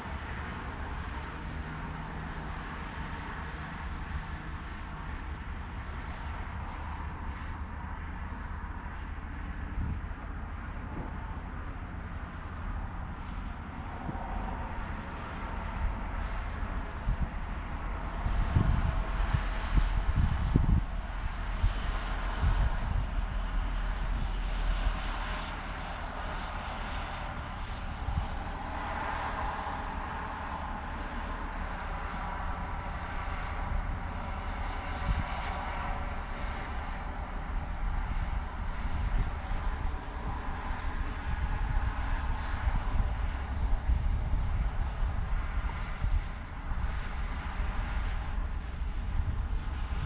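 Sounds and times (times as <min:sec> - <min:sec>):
distant engine drone: 0:00.0 - 0:50.0
distant traffic rumble: 0:00.0 - 0:50.0
wind buffeting microphone: 0:00.0 - 0:50.0.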